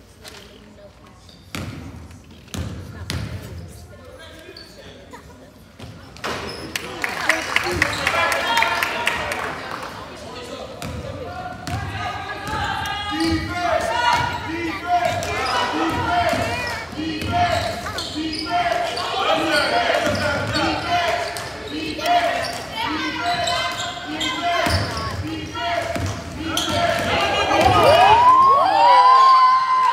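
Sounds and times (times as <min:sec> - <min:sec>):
spectators shouting: 0:24.1 - 0:29.9.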